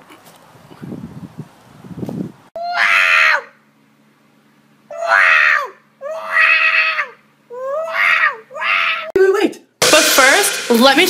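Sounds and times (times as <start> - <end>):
cat yowling: 2.6 - 3.5, 4.9 - 9.1.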